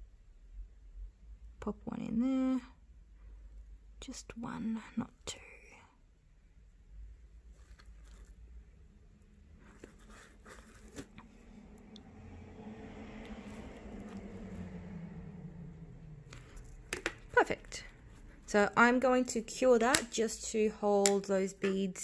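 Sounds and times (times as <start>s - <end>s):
small taps and handling noise: 9.6s - 12.1s, 16.2s - 18.6s, 19.2s - 20.4s, 21.0s - 22.0s
low rushing noise: 11.5s - 16.8s.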